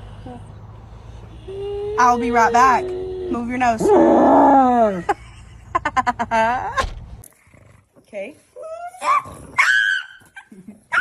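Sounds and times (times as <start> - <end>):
dog whining: 1.4 - 5.0.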